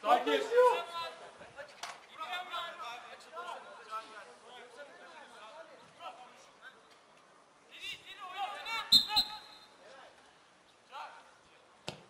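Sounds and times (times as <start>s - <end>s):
players shouting: 7.9s - 9.7s.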